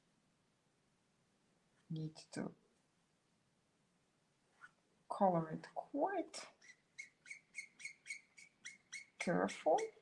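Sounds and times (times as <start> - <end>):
marker squeaking on paper: 6.6 - 10.0.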